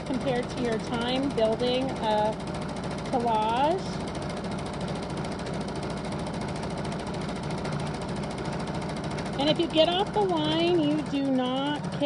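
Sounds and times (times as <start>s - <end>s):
sewing machine running: 0.0s - 12.0s.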